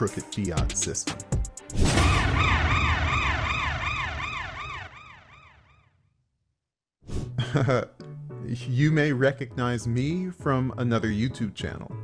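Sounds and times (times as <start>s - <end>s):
siren-like alarm wail: 1.9s - 5.9s.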